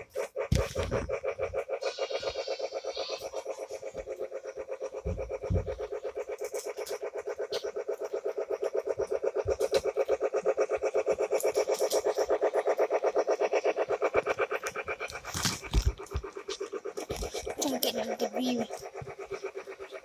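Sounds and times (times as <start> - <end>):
toy train rhythmic buzz: 0.0 - 20.0.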